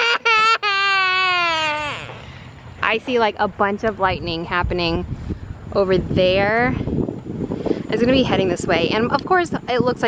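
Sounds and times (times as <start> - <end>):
toddler whining and wailing: 0.0 - 2.3.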